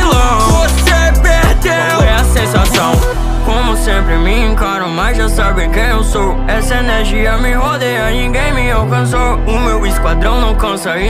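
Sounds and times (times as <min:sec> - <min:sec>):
rapping over a beat: 0:00.0 - 0:11.0.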